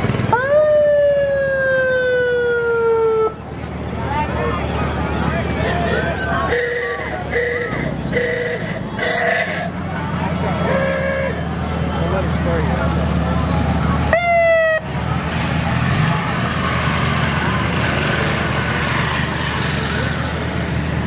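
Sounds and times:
crowd chatting: 0:00.0 - 0:21.0
vehicles passing: 0:00.0 - 0:21.0
loud horn blast: 0:06.4 - 0:09.8, 0:10.6 - 0:11.5
short horn toots: 0:06.5 - 0:09.7.

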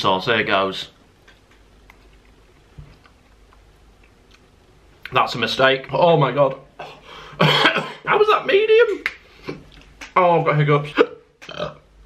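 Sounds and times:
chewing with wet clicks: 0:01.2 - 0:05.2.

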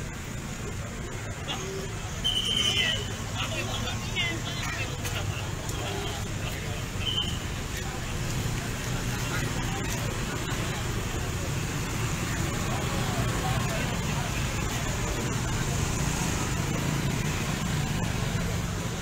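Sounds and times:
crowd talking: 0:00.0 - 0:19.0
motorcycles and scooters riding past: 0:11.7 - 0:19.0.

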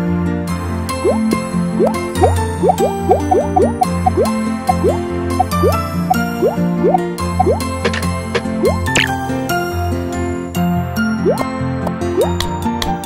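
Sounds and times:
cartoon background music: 0:00.6 - 0:13.0
rising bloop sound effects: 0:01.0 - 0:08.0.

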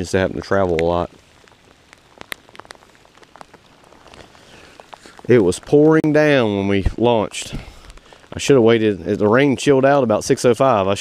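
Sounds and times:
light rain hiss: 0:00.0 - 0:11.0
raindrops ticking on surfaces: 0:00.0 - 0:11.0.

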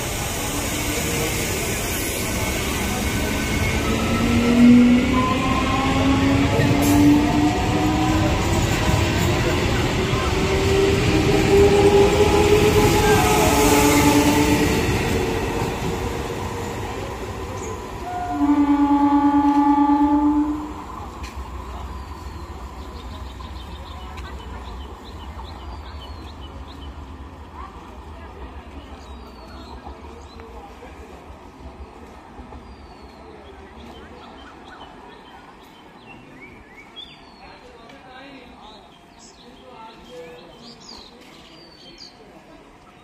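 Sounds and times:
rails rumbling: 0:00.0 - 0:35.2
train horn blast: 0:11.5 - 0:14.9, 0:18.0 - 0:20.9.

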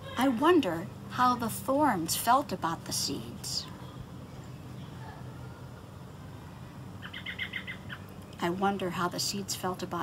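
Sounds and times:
bird chirping: 0:07.0 - 0:08.4.

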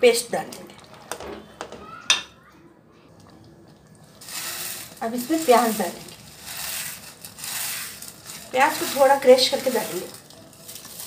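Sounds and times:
curry crackling and scraping in pot: 0:03.2 - 0:11.0.

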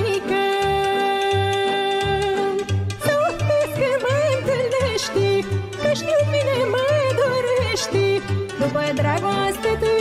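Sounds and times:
ornamented folk melody: 0:00.0 - 0:10.0.

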